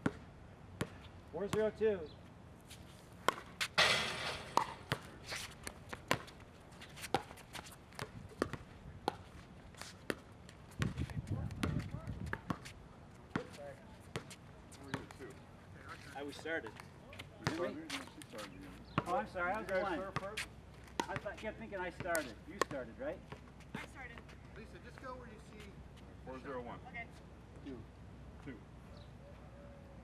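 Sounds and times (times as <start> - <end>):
ball bouncing on hard court: 3.3 - 6.3, 8.0 - 9.2, 10.8 - 12.7, 17.4 - 17.8, 21.0 - 21.3.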